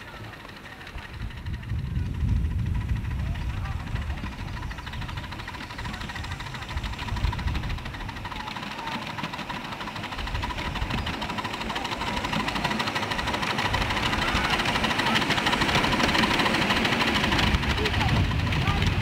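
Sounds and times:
model steam locomotive chuffing: 0.0s - 19.0s.

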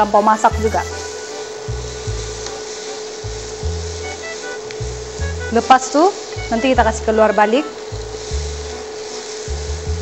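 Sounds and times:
background music with bass line: 0.0s - 10.0s
vegetables sizzling in oil: 0.0s - 10.0s.

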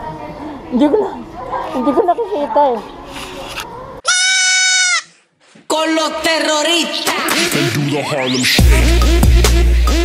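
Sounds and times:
baby goat bleating: 4.0s - 5.2s.

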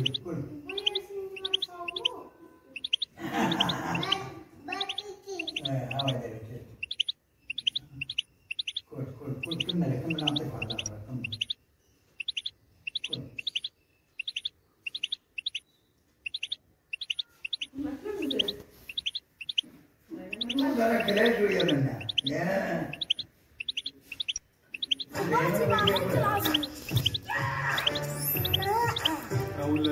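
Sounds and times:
goldfinch chirping: 0.0s - 29.9s.

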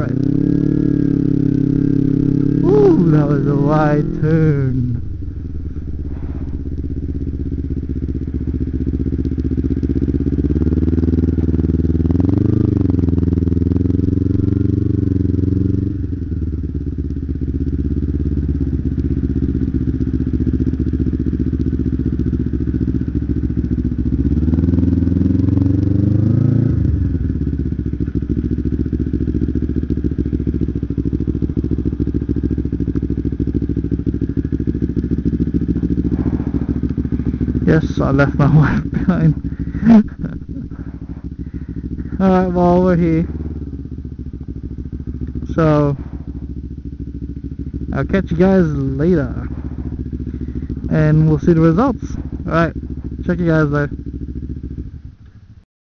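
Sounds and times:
motorcycle engine revving: 0.0s - 55.6s.

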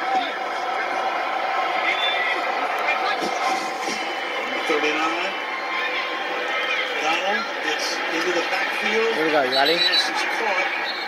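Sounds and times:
crowd din on television: 0.0s - 11.0s
sports commentary: 6.6s - 11.0s.

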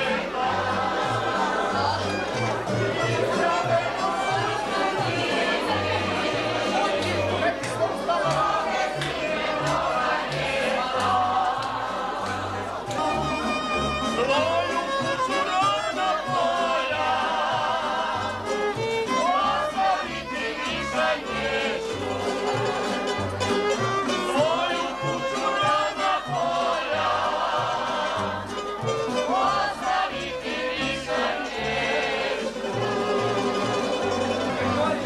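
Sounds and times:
plucked bass notes: 0.0s - 19.5s, 21.2s - 29.8s, 32.7s - 35.0s
group singing folk song: 0.0s - 35.0s
string band playing: 0.0s - 35.0s.

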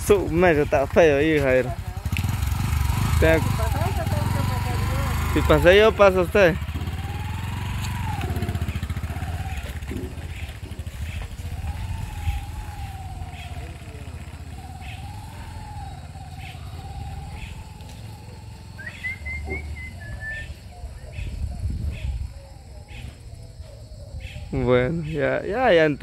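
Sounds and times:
wavering engine whine: 0.0s - 24.7s
motorcycle engine at low revs: 0.0s - 25.6s.

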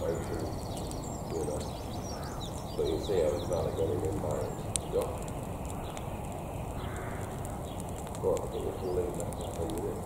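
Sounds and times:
burning straw crackling: 0.0s - 10.0s
sharp little pops: 4.0s - 10.0s.

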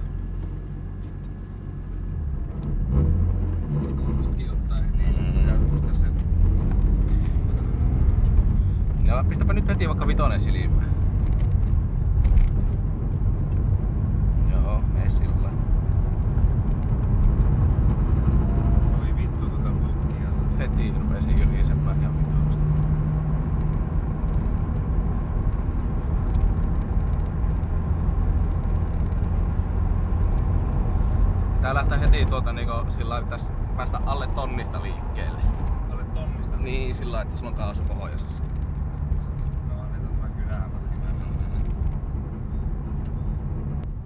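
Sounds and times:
car engine drone in cabin: 0.0s - 44.0s
road noise: 0.0s - 44.0s.

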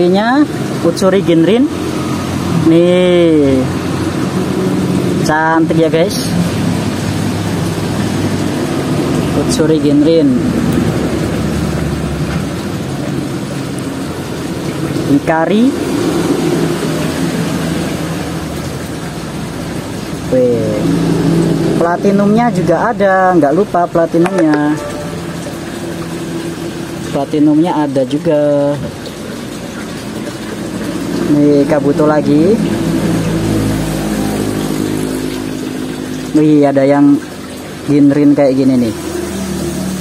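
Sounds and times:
water sloshing in a tub: 0.0s - 40.0s.

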